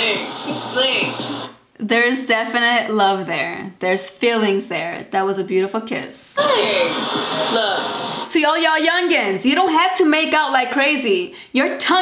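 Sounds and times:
voices: 0.0s - 12.0s
woman speaking: 0.0s - 12.0s.

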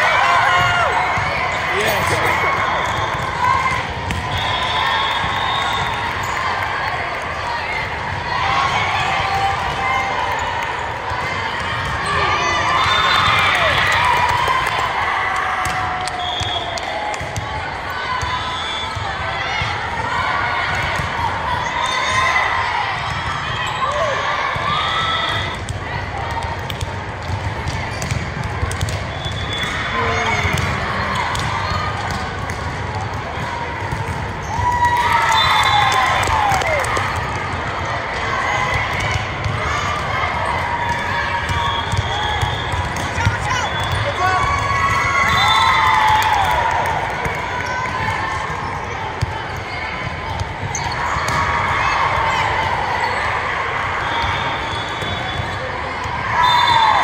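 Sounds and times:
players calling out: 0.0s - 6.6s, 29.2s - 57.0s
spectators' voices: 0.0s - 57.0s.

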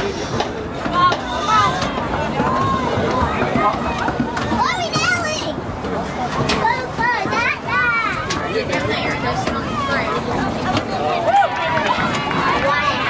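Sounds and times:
shouting and chatter of voices: 0.0s - 13.0s.

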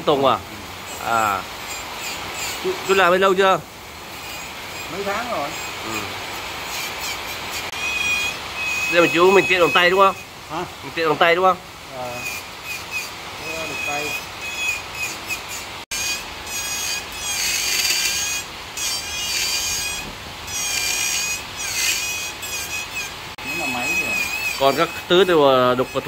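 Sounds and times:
bit rasping into wood: 4.1s - 10.2s, 12.1s - 26.0s
rotary tool whining: 4.1s - 10.3s, 12.1s - 26.0s.

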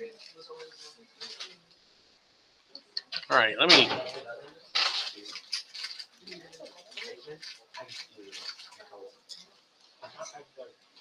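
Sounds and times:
faint indistinct speech: 0.0s - 2.1s.

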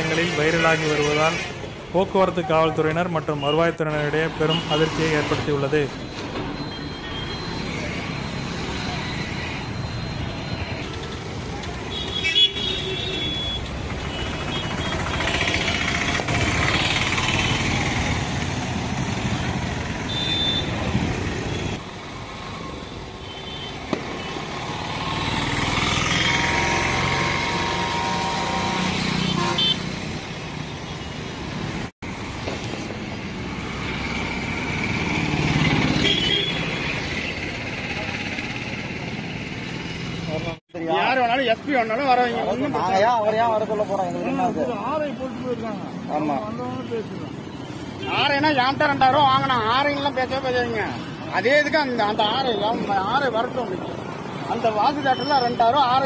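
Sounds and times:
motorcycles and cars passing: 3.8s - 5.9s, 7.4s - 56.0s
vehicle horn toots: 20.1s - 20.8s, 27.6s - 29.9s, 36.0s - 36.8s.

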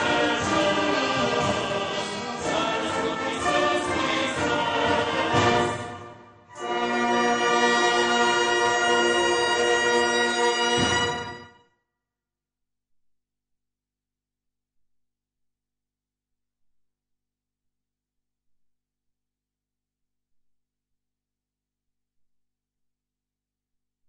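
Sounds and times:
brass band playing: 0.0s - 11.6s.

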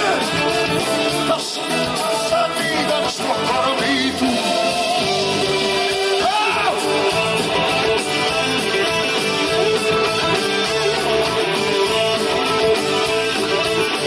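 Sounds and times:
electric guitar: 0.0s - 14.0s
live rock band: 0.0s - 14.0s
person singing: 0.0s - 14.0s.

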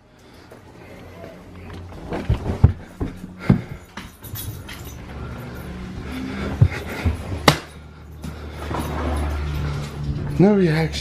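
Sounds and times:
footsteps on carpeted stairs: 0.5s - 10.5s.

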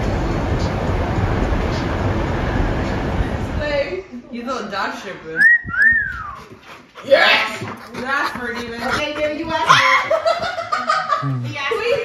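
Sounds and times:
person wolf whistling: 5.4s - 6.5s.

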